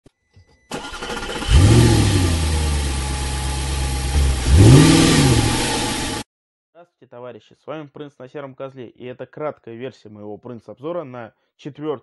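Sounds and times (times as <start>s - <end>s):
car engine starting and revving: 0.7s - 6.2s.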